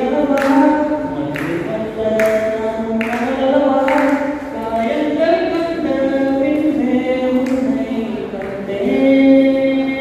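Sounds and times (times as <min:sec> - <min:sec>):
man singing unaccompanied: 0:00.0 - 0:10.0.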